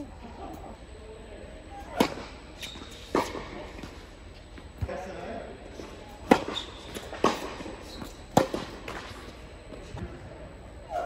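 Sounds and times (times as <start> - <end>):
tennis ball bouncing on hard court: 6.2 - 9.3
tennis ball hit by rackets: 6.2 - 9.3.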